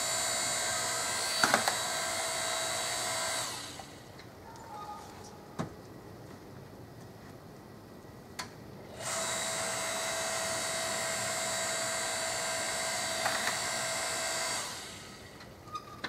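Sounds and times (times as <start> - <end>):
log splitter motor whining: 0.0 - 4.1, 9.0 - 15.5.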